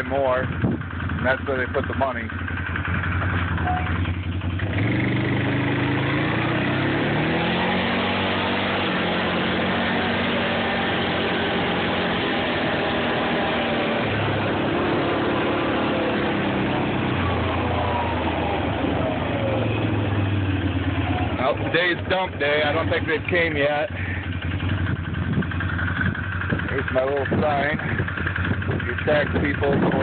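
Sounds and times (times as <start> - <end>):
quad bike engine running: 0.0 - 30.0.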